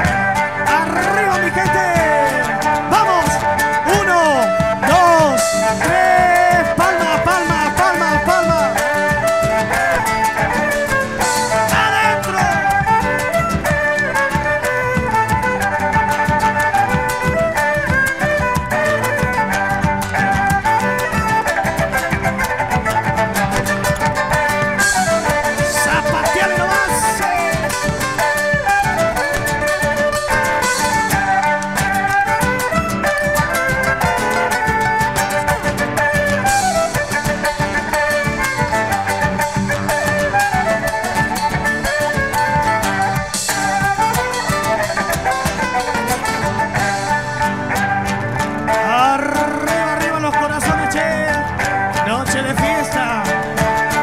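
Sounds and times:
strummed acoustic guitar: 0.0 - 54.0
drum kit beat: 20.6 - 31.8.

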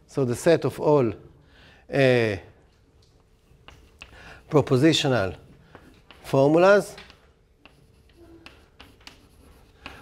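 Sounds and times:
chalk scratching on blackboard: 3.4 - 10.0.

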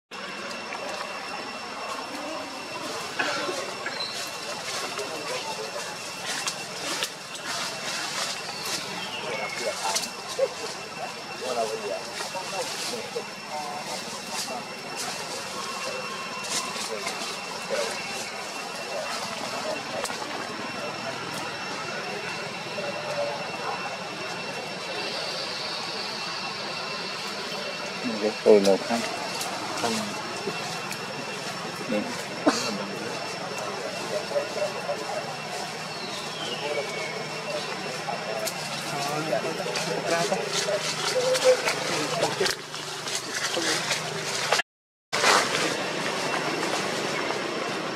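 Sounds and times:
high-pitched insect drone: 0.1 - 44.5.

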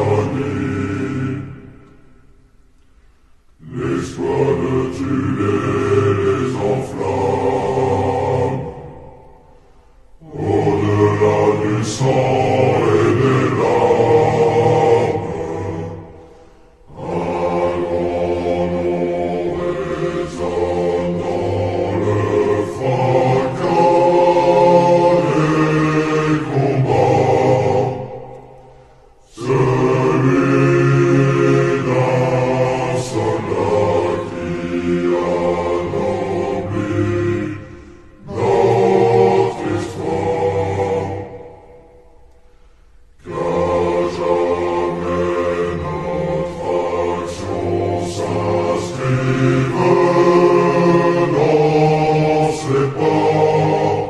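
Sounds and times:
choir singing with heavy reverb: 0.0 - 54.0.

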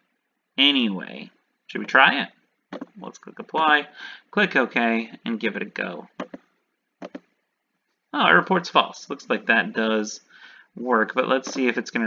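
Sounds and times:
computer mouse clicks: 6.2 - 7.3.

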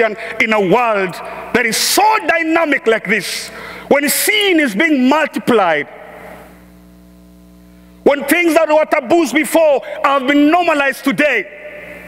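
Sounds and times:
man's voice reverberating: 0.0 - 6.3, 8.0 - 12.0
electrical mains hum: 0.0 - 12.0.

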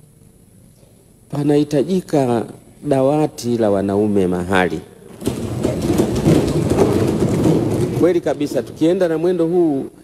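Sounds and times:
people thumping desks: 5.1 - 9.1.

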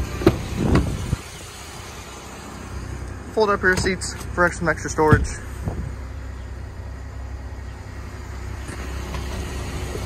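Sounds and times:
steady low rumble: 0.4 - 10.0.

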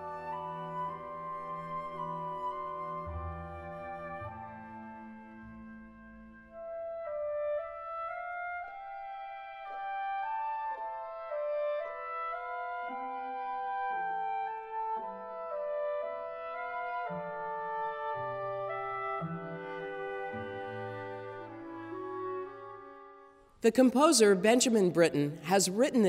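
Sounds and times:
clarinet melody: 0.0 - 23.4.

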